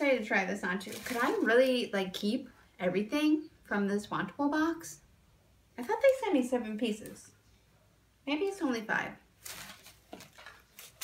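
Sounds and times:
clothing and packaging rustling: 0:00.0 - 0:02.2, 0:09.4 - 0:11.0.

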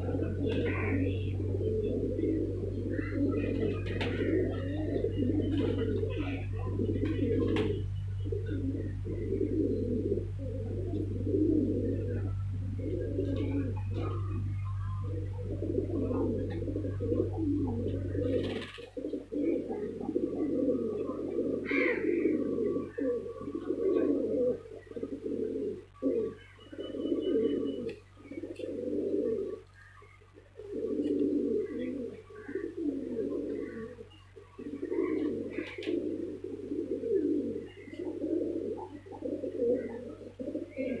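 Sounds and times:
pigeons cooing: 0:00.0 - 0:41.0.

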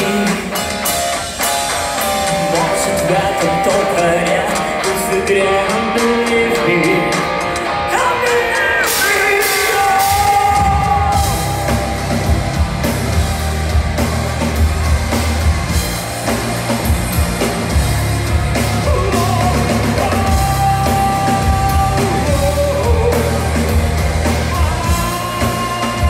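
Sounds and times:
person singing: 0:00.0 - 0:00.9, 0:02.0 - 0:12.4, 0:18.6 - 0:26.0
heavy bass and drums: 0:00.0 - 0:26.0
live band through club speakers: 0:00.0 - 0:26.0.

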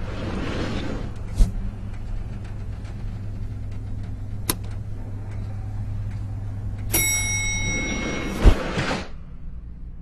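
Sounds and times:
low steady hum: 0:00.0 - 0:10.0
elevator arrival chime: 0:05.8 - 0:08.5.

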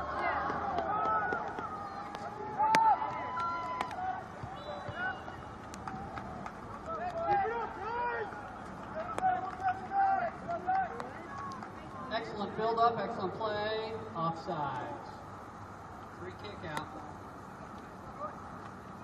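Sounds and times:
players and spectators shouting: 0:00.0 - 0:12.8.

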